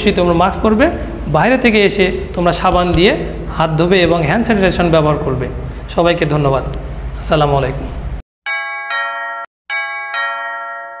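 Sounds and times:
two-note ding-dong chime: 8.5s - 11.0s.

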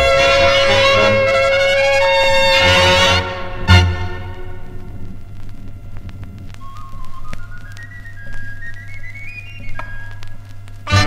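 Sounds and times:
small pipe playing thin melody: 0.0s - 5.0s, 5.9s - 11.0s
steady low hum: 0.0s - 11.0s
vinyl record crackles: 0.0s - 11.0s.

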